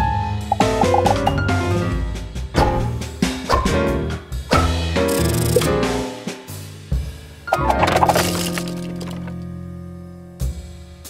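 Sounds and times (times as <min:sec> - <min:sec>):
background music low chord: 0:00.0 - 0:11.0.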